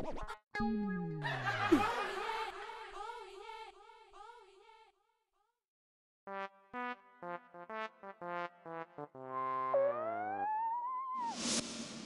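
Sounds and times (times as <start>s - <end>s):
canned audience laughter: 1.2s - 2.8s
falling comedic tone: 9.2s - 11.4s.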